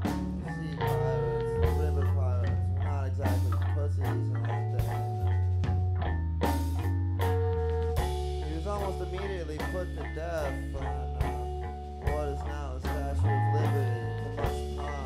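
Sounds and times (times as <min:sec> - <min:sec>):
bass notes: 0:00.0 - 0:15.0
drums with cymbal hits: 0:00.0 - 0:15.0
electric guitar: 0:00.0 - 0:15.0.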